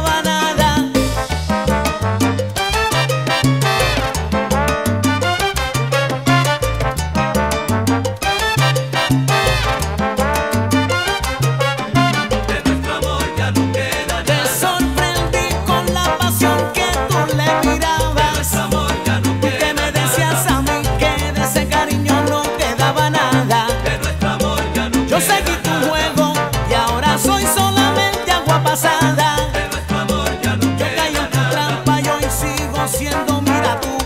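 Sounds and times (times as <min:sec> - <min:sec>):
rhythmic bass line: 0:00.0 - 0:34.0
salsa band playing: 0:00.0 - 0:34.0.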